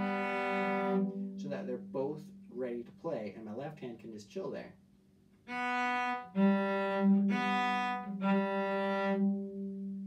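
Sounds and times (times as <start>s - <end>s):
bowed cello notes: 0.0s - 3.2s, 5.5s - 10.0s.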